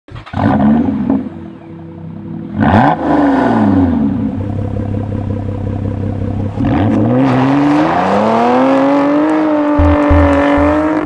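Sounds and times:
car engine revving: 2.2 - 11.0.

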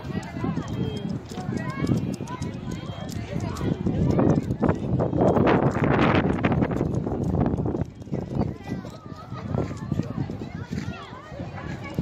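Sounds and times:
distant children calling and chattering: 0.0 - 12.0.

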